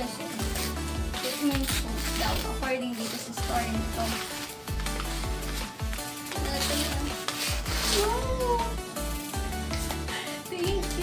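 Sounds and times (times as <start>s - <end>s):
background music: 0.0s - 11.0s
paper wrapping crinkling and tearing: 0.0s - 11.0s.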